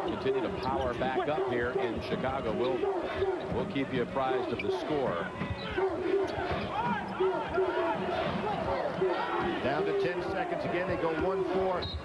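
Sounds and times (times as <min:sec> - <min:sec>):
crowd noise: 0:00.0 - 0:12.0
sneakers squeaking on hardwood: 0:00.5 - 0:07.8.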